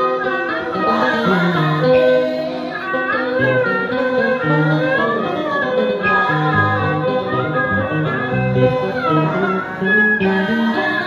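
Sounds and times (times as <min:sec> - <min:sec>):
plucked and bowed string music: 0:00.0 - 0:11.0.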